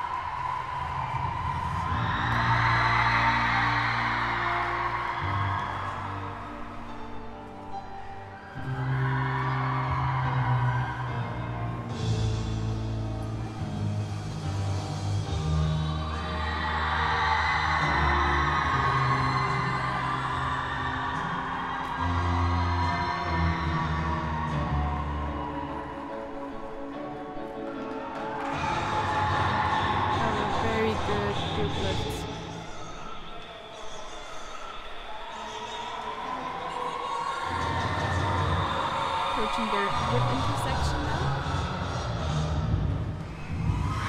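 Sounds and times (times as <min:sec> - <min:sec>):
music over loudspeakers: 0:00.0 - 0:32.7, 0:37.2 - 0:43.9.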